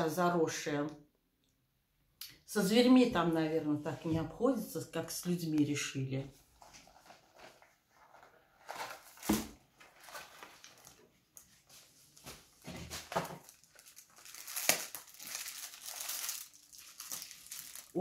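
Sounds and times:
wrapping and cardboard crinkling: 6.4s - 18.0s
sharp crackle: 13.4s - 18.0s.

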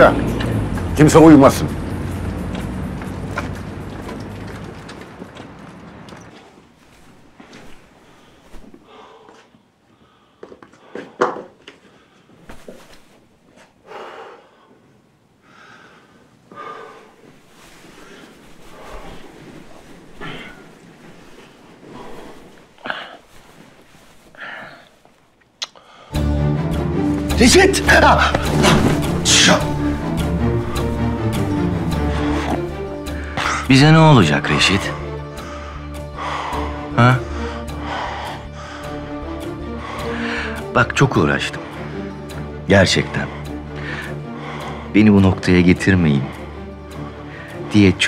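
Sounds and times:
music: 0.0s - 4.6s, 26.0s - 48.0s
man breathing heavily in sleep: 7.9s - 12.5s, 13.8s - 25.2s, 25.8s - 26.4s, 30.6s - 33.7s, 35.0s - 40.7s, 41.6s - 42.6s, 43.2s - 45.0s, 46.3s - 47.7s.

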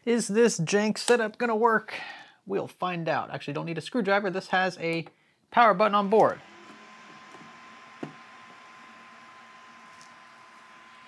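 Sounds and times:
computer fans humming: 6.3s - 11.0s.

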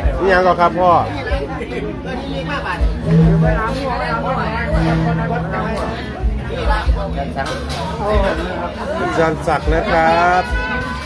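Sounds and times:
people talking: 1.2s - 8.8s.

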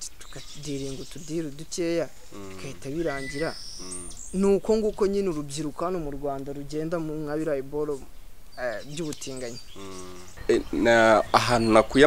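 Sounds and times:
high thin insect call: 0.0s - 6.4s, 7.0s - 11.7s
man speaking softly: 0.0s - 8.0s, 8.6s - 12.0s.

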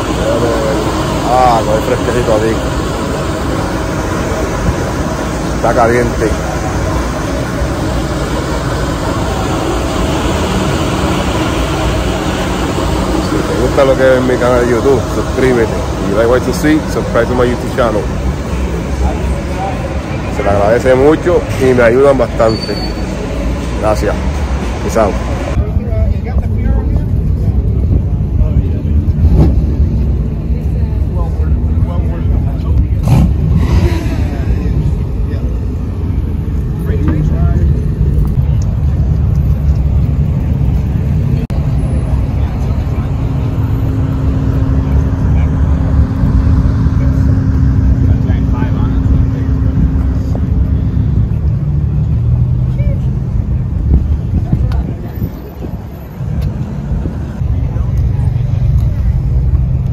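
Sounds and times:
people talking: 0.0s - 29.5s, 30.2s - 39.0s, 40.7s - 51.2s, 52.6s - 53.2s, 54.2s - 56.2s, 57.3s - 59.5s
car engines rumbling: 0.0s - 59.9s.

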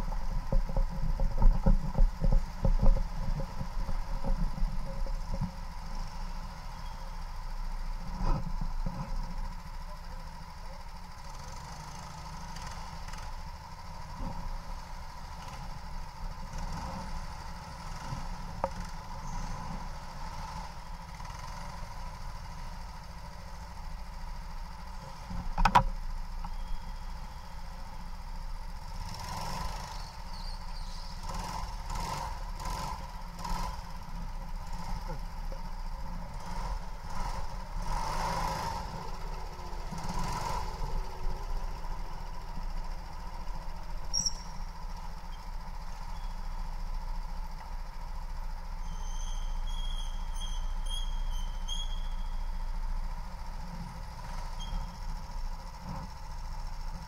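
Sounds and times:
go-kart engine rumble: 0.0s - 57.0s
short rattly bumps: 0.1s - 6.0s.

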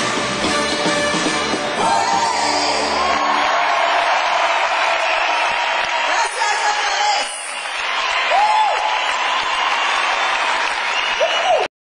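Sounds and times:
live pop song: 0.0s - 3.1s
audience applauding: 2.8s - 11.7s.

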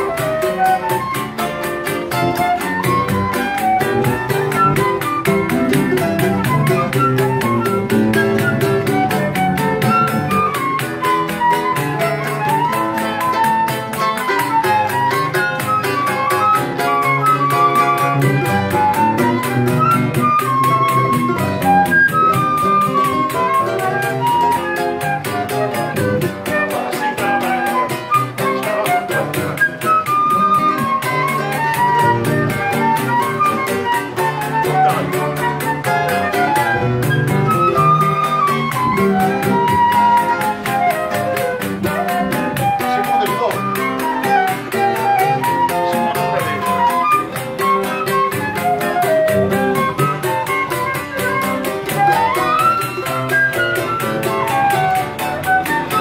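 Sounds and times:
acoustic guitar: 0.0s - 56.0s
bandolim: 0.0s - 56.0s
cavaquinho: 0.0s - 56.0s
flute melody: 0.0s - 56.0s.

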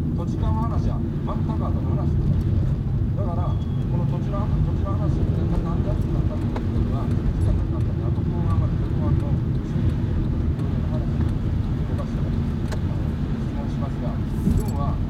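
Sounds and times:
car engine and tyre rumble: 0.0s - 15.0s
man talking on car radio: 0.0s - 15.0s.

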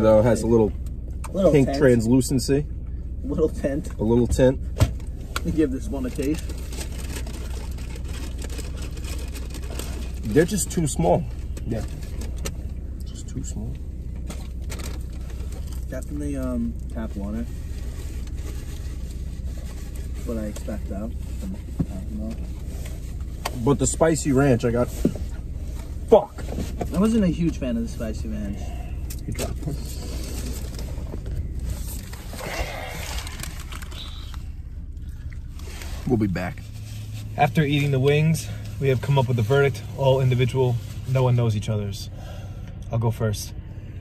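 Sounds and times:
car engine idling hum: 0.0s - 44.0s.

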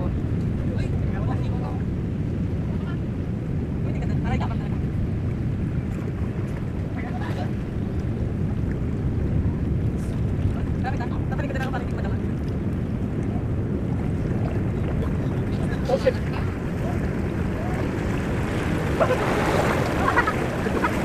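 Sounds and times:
sea surf: 0.0s - 21.0s
wind buffeting microphone: 0.0s - 21.0s
wave rushing over rocks: 6.0s - 21.0s.

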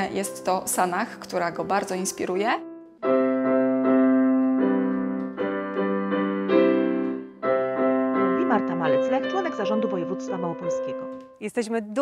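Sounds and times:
digital piano chords: 0.0s - 11.5s.

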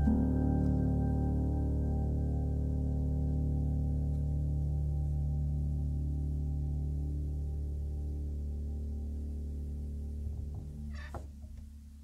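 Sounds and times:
muffled piano chord: 0.0s - 9.1s.

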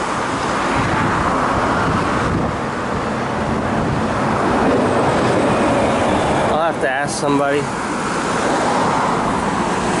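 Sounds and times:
cars driving past: 0.0s - 10.0s.

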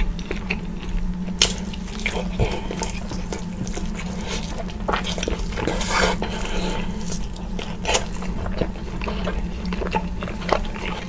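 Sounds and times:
wet chewing and smacking: 0.0s - 11.0s.

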